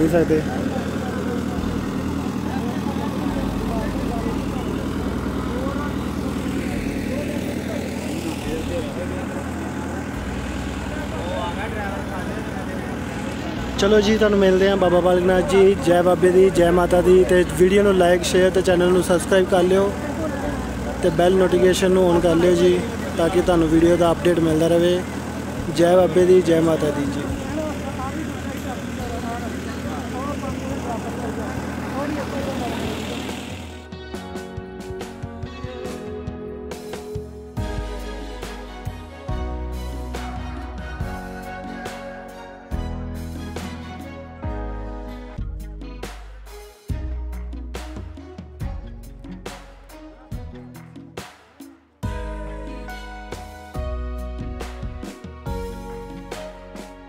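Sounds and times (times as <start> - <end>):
indistinct voices of passengers: 0.0 - 13.8, 26.7 - 33.8
ferry engine droning: 0.0 - 51.1.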